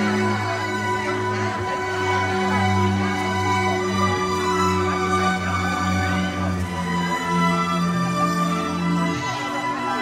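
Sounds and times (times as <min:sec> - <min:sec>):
string orchestra playing: 0:00.0 - 0:10.0.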